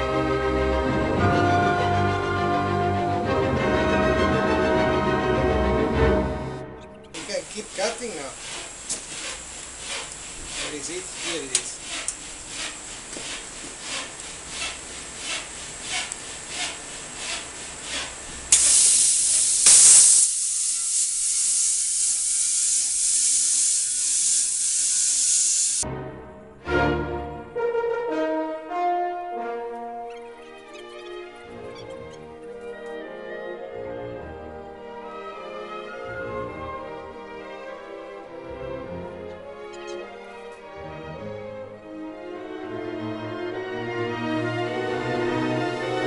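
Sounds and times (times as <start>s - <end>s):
plasma cutter hissing: 7.2s - 25.8s.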